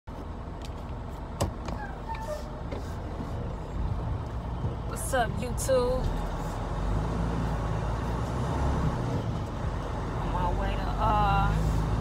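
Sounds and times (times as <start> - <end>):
car interior rumble: 0.1 - 12.0.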